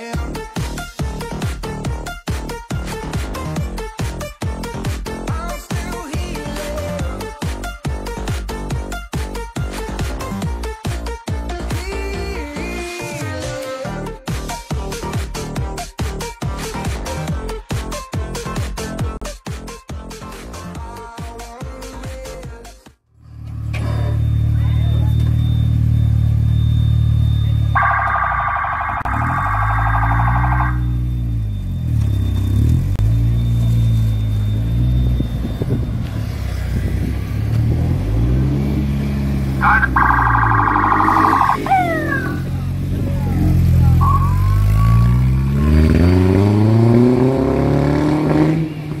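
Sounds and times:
motorcycle engine idling and revving: 0:00.0 - 0:13.0, 0:23.2 - 0:49.0
warbling electronic alarm: 0:23.8 - 0:36.4, 0:39.6 - 0:42.7, 0:43.4 - 0:46.1.

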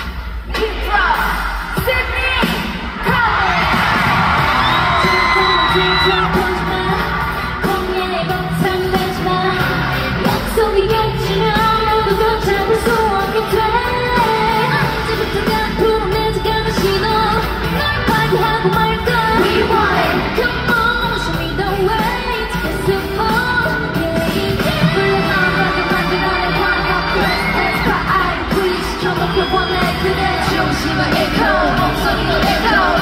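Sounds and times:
pop backing track with heavy bass: 0:00.0 - 0:33.0
female vocals singing: 0:04.6 - 0:33.0.

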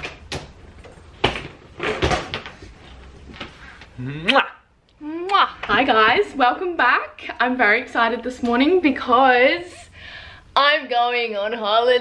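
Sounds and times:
person exclaiming: 0:04.0 - 0:04.5.

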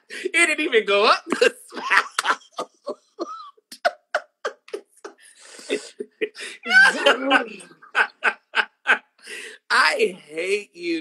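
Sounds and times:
woman laughing hard: 0:05.6 - 0:09.0.

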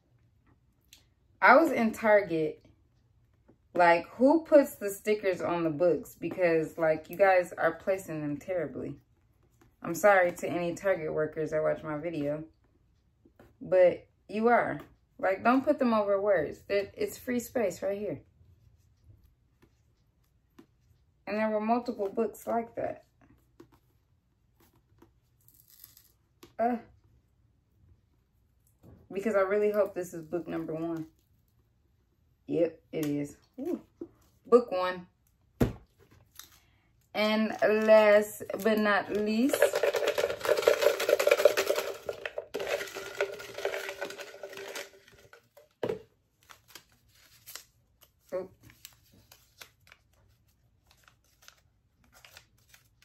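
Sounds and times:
paper slips rattling in jar: 0:38.5 - 0:45.8
paper crinkling: 0:46.3 - 0:53.0.

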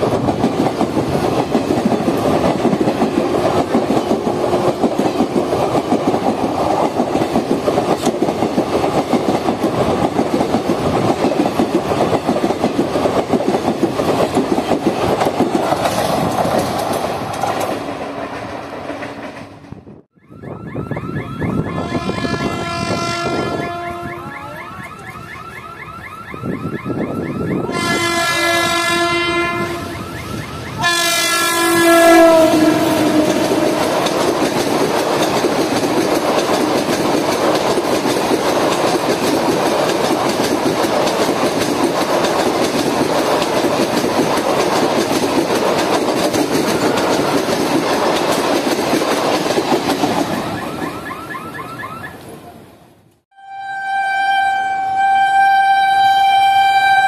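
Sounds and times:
train coaches rumble and wheel clatter: 0:00.0 - 0:20.1, 0:20.9 - 0:53.2
locomotive horn blasts: 0:21.5 - 0:24.9, 0:27.5 - 0:34.0, 0:53.4 - 0:57.0.

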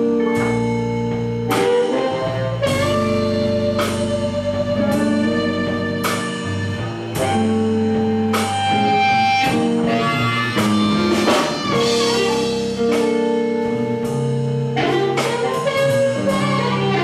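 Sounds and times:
drum strokes: 0:00.0 - 0:17.0
electric blues band playing: 0:00.0 - 0:17.0
amplified harmonica: 0:00.4 - 0:17.0.

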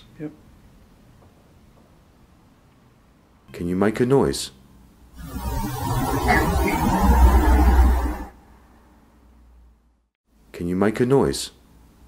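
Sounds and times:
deep rumbling noise: 0:05.2 - 0:08.8.

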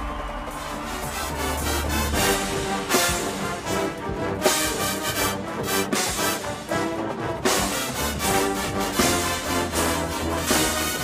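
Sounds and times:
brass ensemble chords: 0:00.0 - 0:11.0.

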